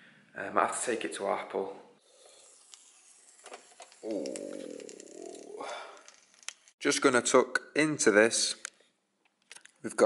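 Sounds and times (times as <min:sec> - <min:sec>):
man saying ooh: 0:04.0 - 0:05.9.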